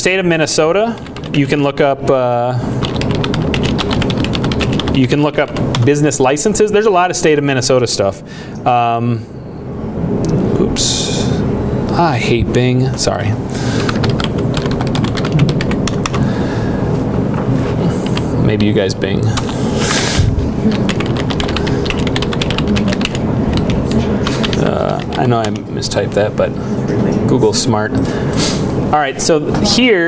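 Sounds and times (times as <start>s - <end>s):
low room hum: 0.0s - 30.0s
rapid laptop keyboard typing: 0.8s - 1.6s, 2.8s - 6.0s, 13.8s - 16.3s, 19.3s - 19.6s, 20.6s - 25.7s.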